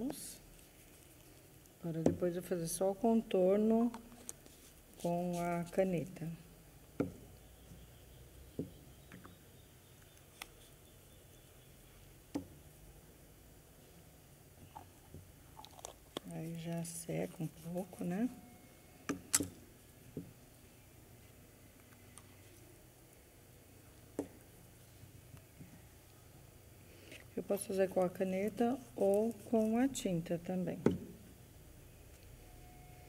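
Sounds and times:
low steady hum: 0.0 - 33.0.

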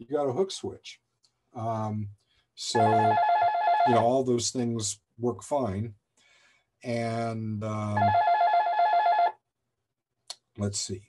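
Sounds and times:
electronic telephone ringer warbling: 2.8 - 4.0, 8.0 - 9.4.

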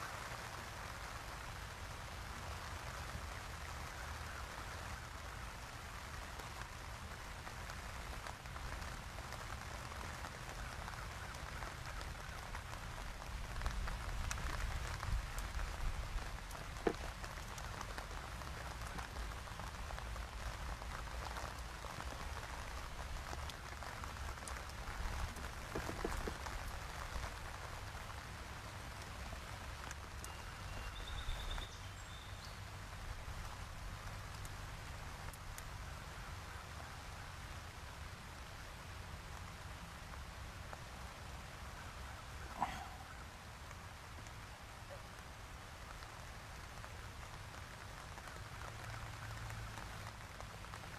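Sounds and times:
rain-like hiss: 0.0 - 50.9.

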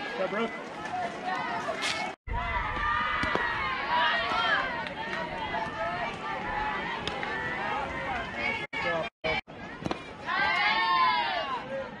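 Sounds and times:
many voices talking and calling out: 0.0 - 12.0.

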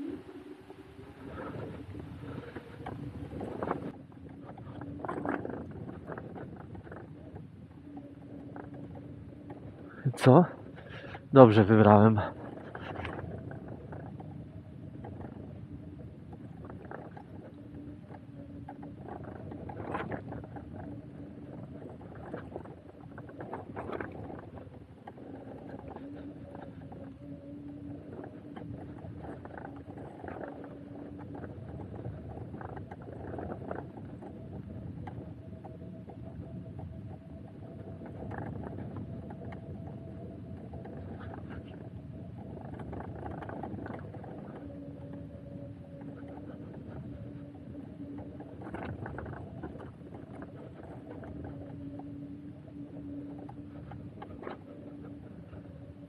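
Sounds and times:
bike tyre and frame rumble: 0.0 - 56.0.

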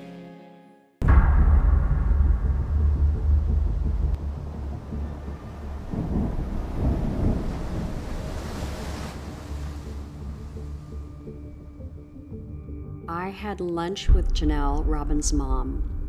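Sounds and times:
ocean waves rumbling: 1.0 - 12.1
hissing wash of surf: 4.5 - 11.1.

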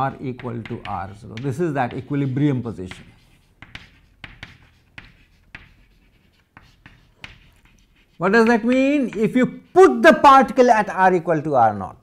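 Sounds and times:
chalk scratching on blackboard: 0.0 - 10.6.

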